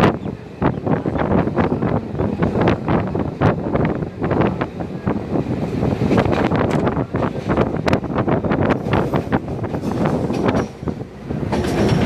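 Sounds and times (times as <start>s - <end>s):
train wheel and rail rumble: 0.0s - 12.0s
wheels clattering over rail joints: 5.9s - 12.0s.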